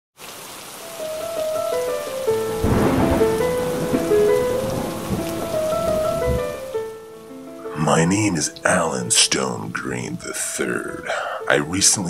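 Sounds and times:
steady rain: 0.2 - 12.0
slow melody of held notes: 0.8 - 12.0
thunder rumbling: 1.0 - 7.0.

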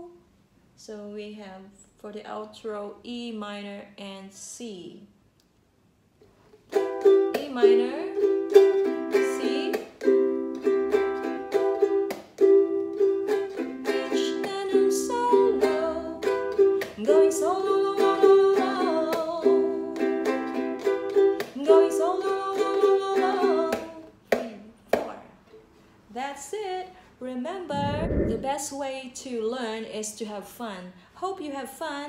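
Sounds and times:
ukulele strumming: 6.7 - 24.1
woman singing: 7.3 - 8.3, 9.1 - 9.8, 13.8 - 20.3, 21.6 - 25.3, 26.1 - 30.4.

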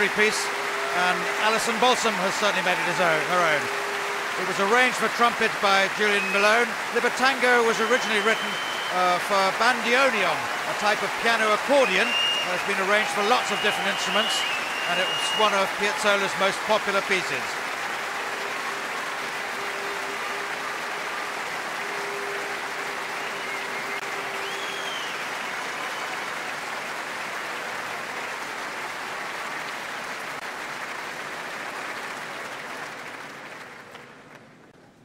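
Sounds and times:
audience applauding: 0.0 - 34.4.

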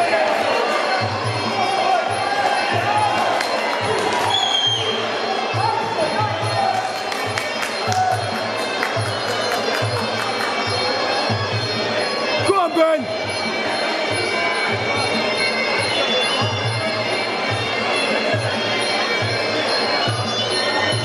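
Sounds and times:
crowd voices: 0.0 - 21.0.

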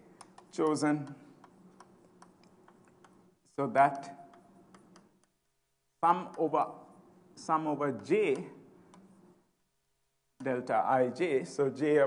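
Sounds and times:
chalk tapping on blackboard: 0.0 - 5.4.

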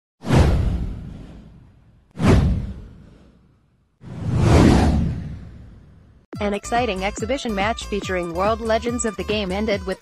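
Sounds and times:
deep downward swoosh: 0.2 - 6.2.

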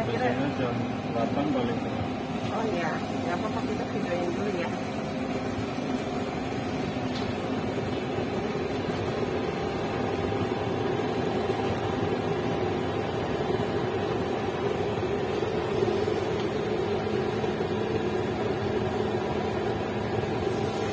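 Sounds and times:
gas burner rushing hum: 0.0 - 20.9.

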